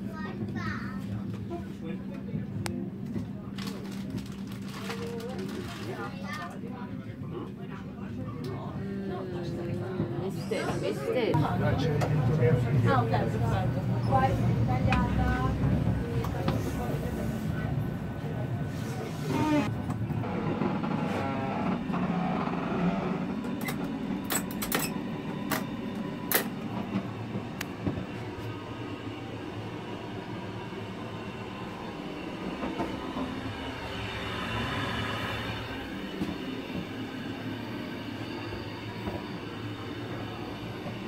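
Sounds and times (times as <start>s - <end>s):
train carriage rumble: 0.0s - 41.0s.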